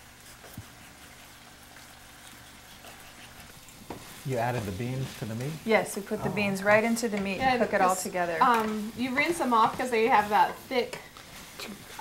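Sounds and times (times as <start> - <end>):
faint steady hiss: 0.0 - 12.0
low electrical hum: 0.0 - 12.0.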